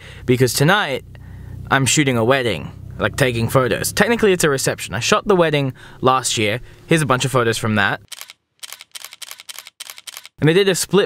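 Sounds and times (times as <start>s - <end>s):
camera shutter clicking rapidly: 8.1s - 10.4s.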